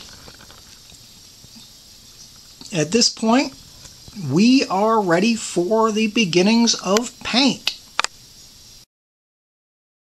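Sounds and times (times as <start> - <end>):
low background hiss: 0.0 - 8.9.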